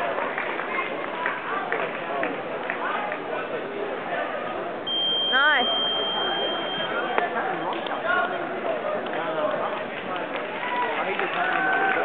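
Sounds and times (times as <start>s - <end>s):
crowd chatter: 0.0s - 12.0s
electronic timer beep: 4.9s - 7.2s.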